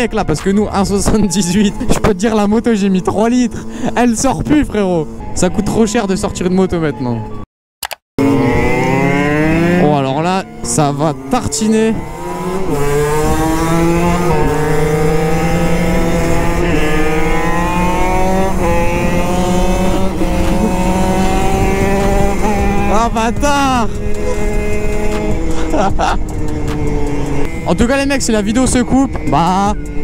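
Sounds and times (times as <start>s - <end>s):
two-stroke engine at full throttle: 0.8s - 4.9s, 8.2s - 30.0s
wind noise: 11.8s - 30.0s.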